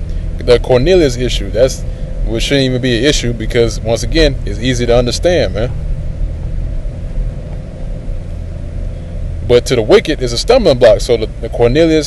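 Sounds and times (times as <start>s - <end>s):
faint hum: 0.0s - 12.0s
steady low rumble: 0.0s - 12.0s.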